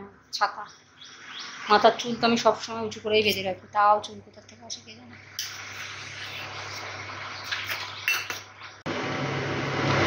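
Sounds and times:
ladle clinking against pot: 7.5s - 8.5s.

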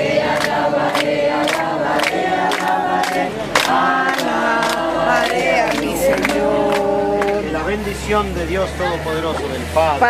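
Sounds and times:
hands clapping a steady beat: 0.0s - 7.5s
group singing in chorus: 0.0s - 8.4s.

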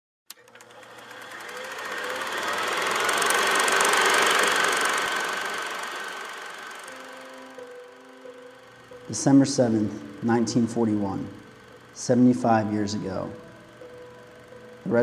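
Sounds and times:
film projector clattering: 0.3s - 8.0s, 8.6s - 15.0s.

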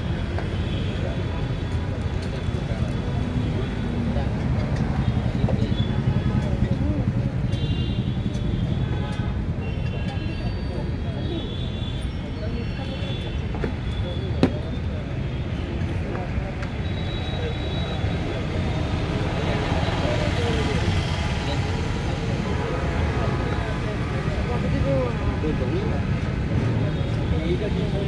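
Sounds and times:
traffic rumble: 0.0s - 28.0s.

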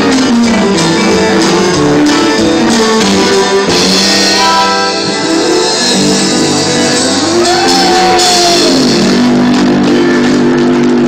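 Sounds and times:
country band sustained chord: 0.0s - 11.0s.

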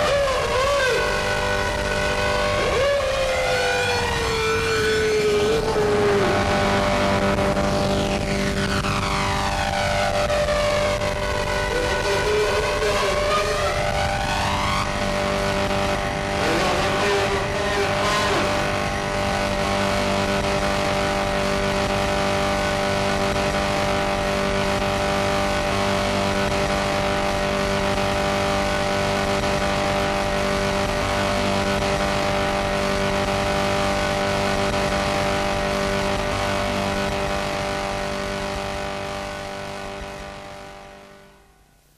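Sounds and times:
droning tones: 0.0s - 41.7s
harsh noise wall: 0.0s - 41.9s.

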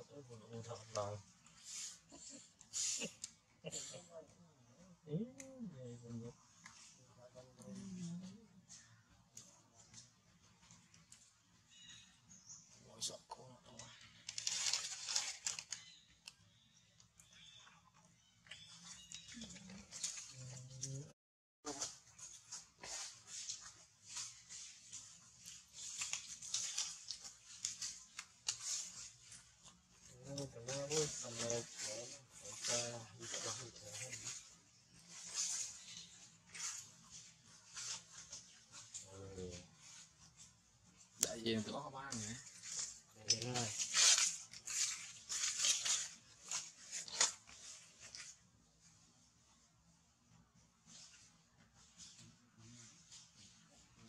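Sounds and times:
dry leaves rustling: 14.0s - 16.0s, 21.6s - 40.6s, 41.8s - 48.4s.

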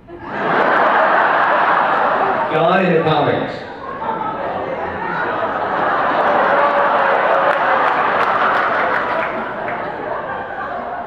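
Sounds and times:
audience laughing: 0.0s - 2.8s, 3.8s - 11.0s
audience applauding: 5.2s - 11.0s.

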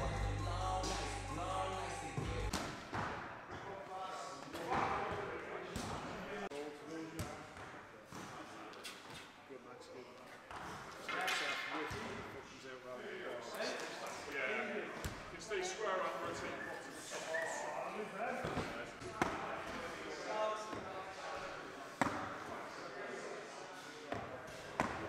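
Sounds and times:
indistinct voices: 0.0s - 2.5s.

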